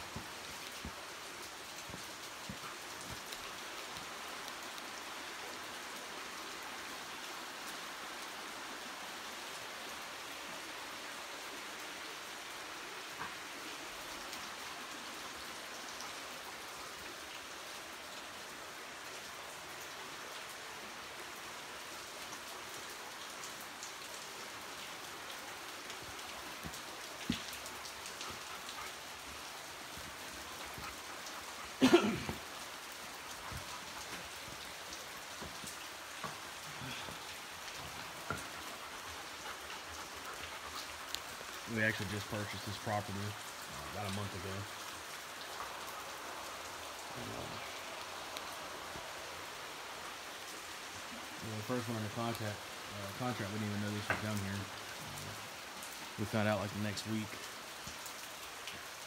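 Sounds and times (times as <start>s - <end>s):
creek flowing over rocks: 0.0s - 59.0s.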